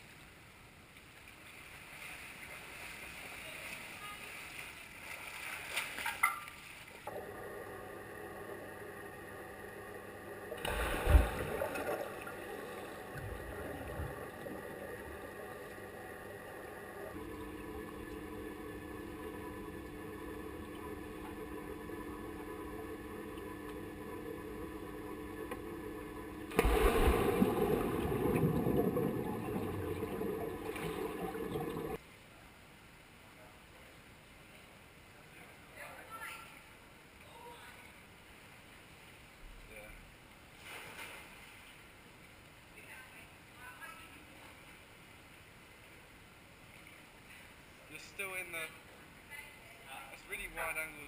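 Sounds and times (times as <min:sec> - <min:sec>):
swimmer splashing: 0:01.4 - 0:32.0
underwater hum: 0:07.1 - 0:32.0
heavy underwater thump: 0:26.5 - 0:30.0.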